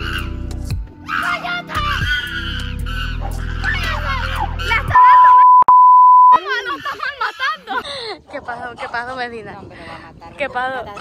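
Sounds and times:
background music: 0.0s - 5.2s
censor bleep: 5.0s - 6.4s.

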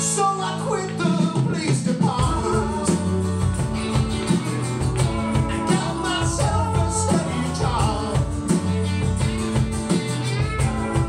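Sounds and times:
man singing: 0.0s - 8.8s
live rock band playing: 0.0s - 11.0s.

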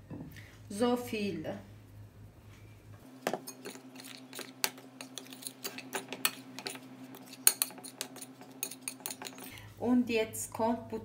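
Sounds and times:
faint steady hum: 0.0s - 11.0s
metal spoon clinking in glass bowl: 3.4s - 9.5s.

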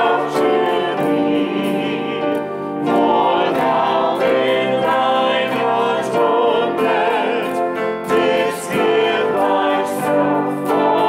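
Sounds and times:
choir and congregation singing hymn: 0.0s - 11.0s
pipe organ: 0.0s - 11.0s.

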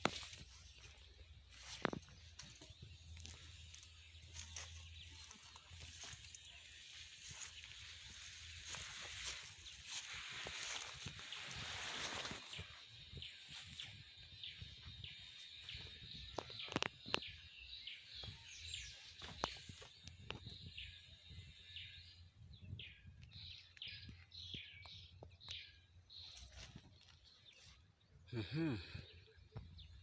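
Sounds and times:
faint birds chirping: 0.0s - 30.0s.

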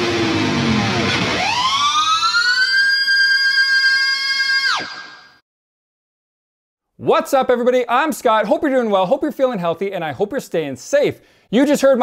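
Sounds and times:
high-gain electric guitar squeal: 0.0s - 5.4s.

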